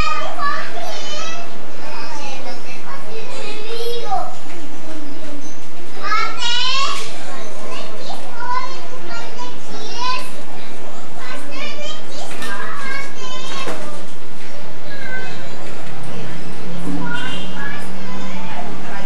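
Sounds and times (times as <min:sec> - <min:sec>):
children shouting and squealing: 0:00.0 - 0:19.0.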